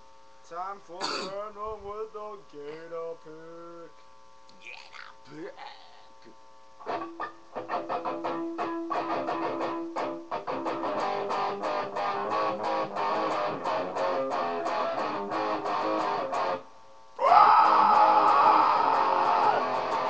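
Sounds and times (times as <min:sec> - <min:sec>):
guitar picked notes: 0:06.8 - 0:16.7, 0:18.8 - 0:20.0.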